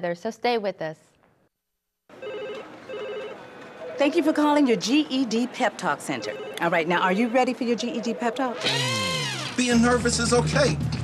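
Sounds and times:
telephone ringing: 2.1s - 4.6s, 6.1s - 9.0s.

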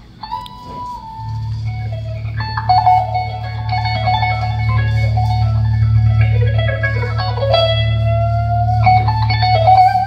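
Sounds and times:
electric guitar lead: 0.0s - 10.0s
steady low bass: 0.0s - 10.0s.

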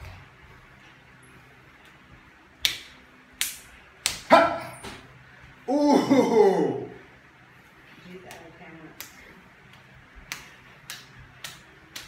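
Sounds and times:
open-hand slaps: 2.6s - 5.1s, 8.2s - 12.0s
person laughing: 5.7s - 7.0s.

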